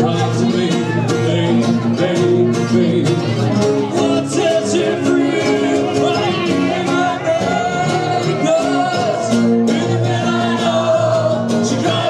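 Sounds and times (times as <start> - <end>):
guitars strumming: 0.0 - 12.0
man singing into microphone: 0.0 - 12.0.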